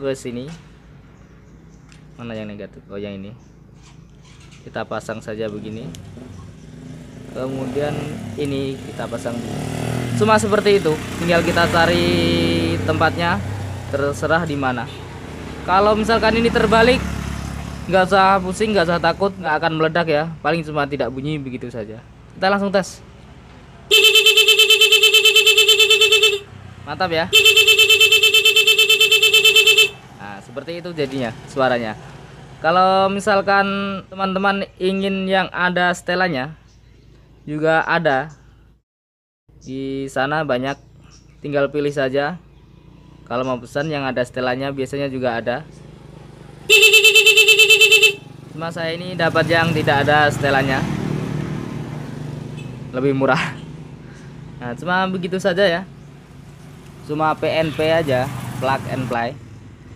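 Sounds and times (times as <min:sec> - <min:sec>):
motorcycle engine idling: 0:03.4 - 0:33.9, 0:44.7 - 0:50.7, 0:51.9 - 0:59.9
stuttering electric horn: 0:23.9 - 0:26.5, 0:27.3 - 0:30.1, 0:46.7 - 0:48.3.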